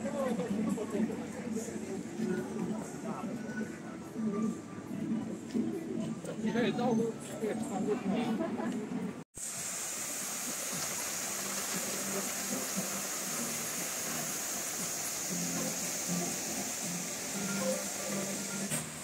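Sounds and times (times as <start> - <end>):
water falling into a pool: 9.4 - 19.0.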